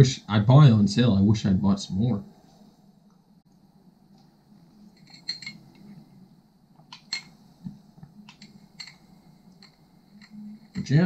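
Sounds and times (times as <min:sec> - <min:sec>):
drinking glass clinking: 0:04.9 - 0:06.0, 0:07.0 - 0:07.5, 0:08.3 - 0:10.9.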